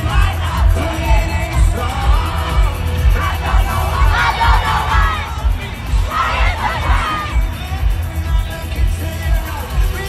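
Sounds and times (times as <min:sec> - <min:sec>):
crowd cheering and singing along: 0:00.0 - 0:10.0
heavy bass beat: 0:00.0 - 0:10.0
loud live pop music: 0:00.0 - 0:10.0.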